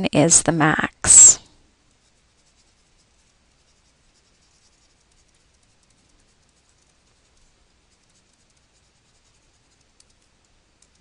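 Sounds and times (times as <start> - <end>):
stylus scratching on a tablet: 1.0 - 11.0.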